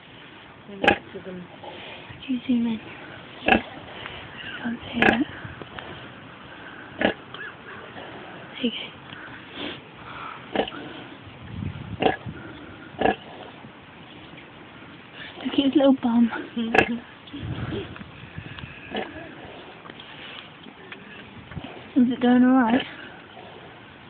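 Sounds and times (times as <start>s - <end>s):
pig grunting: 3.4s - 8.5s, 10.5s - 11.2s, 12.0s - 13.6s, 16.6s - 19.8s.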